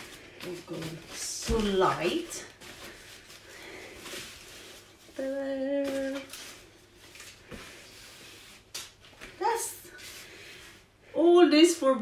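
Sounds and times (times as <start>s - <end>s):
foam packaging rustling: 0.0s - 10.8s.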